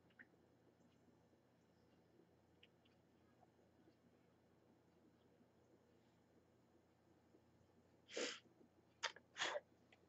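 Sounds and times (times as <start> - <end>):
faint puffs of breath: 8.0 - 8.5.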